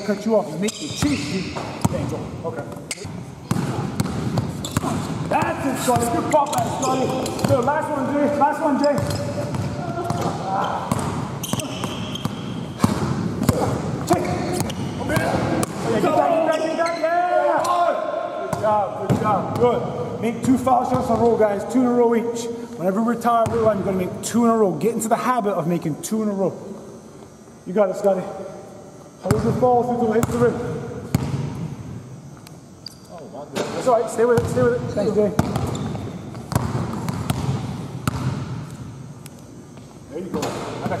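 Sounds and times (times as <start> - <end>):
basketball bouncing on hardwood floor: 3.4 - 6.8, 35.4 - 38.4
basketball bouncing on hardwood: 35.4 - 38.4.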